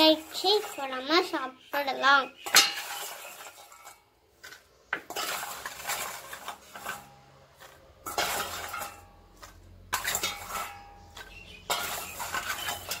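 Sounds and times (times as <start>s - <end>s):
metal spoon scraping steel bowl: 0.0s - 1.4s, 2.3s - 13.0s
nuts clattering: 2.4s - 13.0s.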